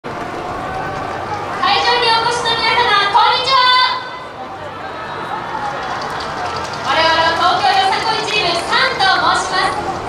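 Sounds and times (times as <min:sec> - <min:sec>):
outdoor crowd murmur: 0:00.0 - 0:10.0.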